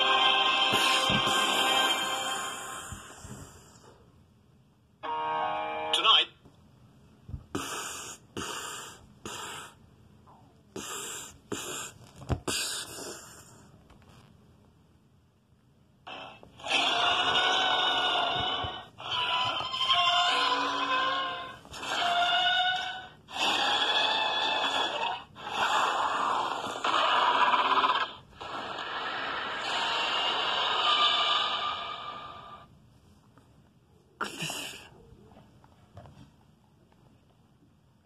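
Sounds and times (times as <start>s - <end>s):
monster screeches and roars: 16.1s - 32.6s.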